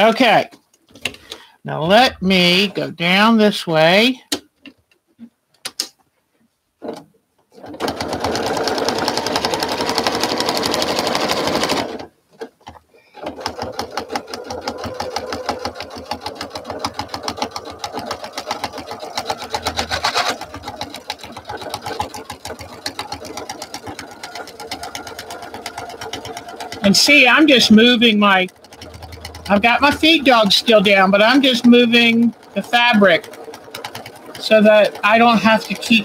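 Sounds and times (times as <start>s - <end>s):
sewing machine stitching: 6.8s - 36.0s.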